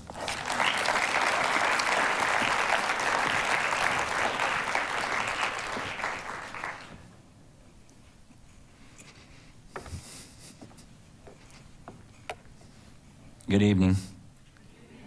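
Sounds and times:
audience applauding: 0.0s - 7.1s.

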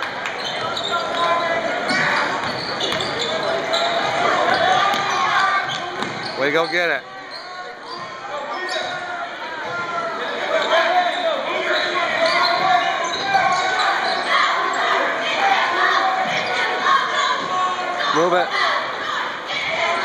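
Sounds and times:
crowd voices echoing: 0.0s - 20.0s.

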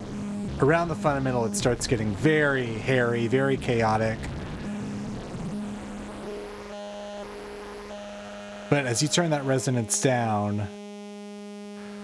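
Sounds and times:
buzzing synth tone: 0.0s - 12.0s.

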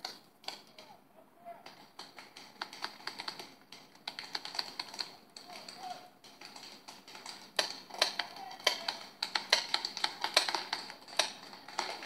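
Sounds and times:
paintball markers popping: 1.7s - 12.0s.

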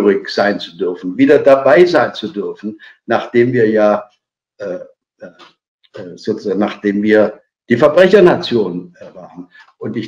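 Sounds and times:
man speaking hesitantly: 0.0s - 4.0s, 4.6s - 5.4s, 6.0s - 10.0s.

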